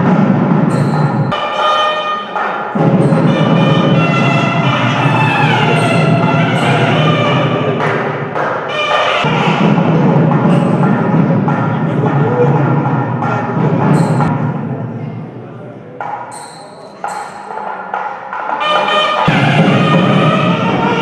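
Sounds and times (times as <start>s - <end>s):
heavy drumming: 0.0s - 15.4s, 16.9s - 21.0s.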